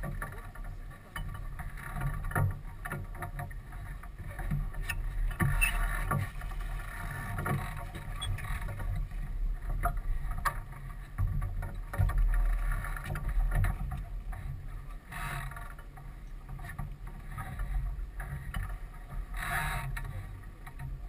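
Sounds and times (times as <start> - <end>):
rush of wind and water: 0.0 - 21.0.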